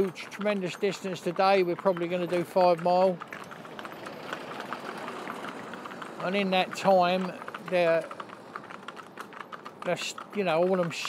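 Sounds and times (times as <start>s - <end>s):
light clicking of small hooves: 0.0s - 11.0s.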